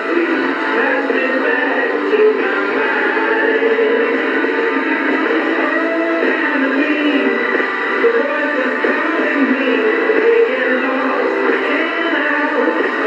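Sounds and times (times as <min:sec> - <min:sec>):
music through small radio speaker: 0:00.0 - 0:13.0.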